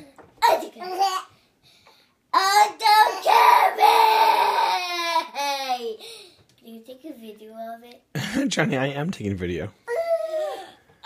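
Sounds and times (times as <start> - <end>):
child sing-song shouting: 2.3 - 6.0.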